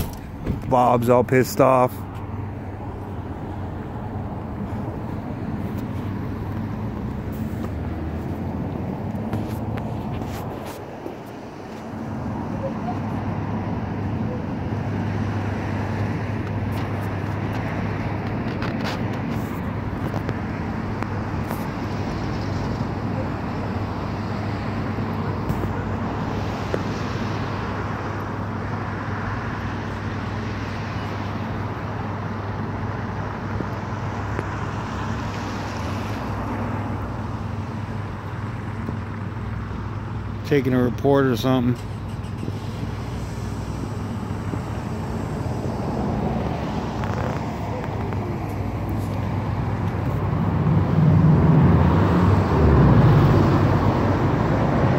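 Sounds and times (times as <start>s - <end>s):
road traffic engine hum: 0.0s - 54.9s.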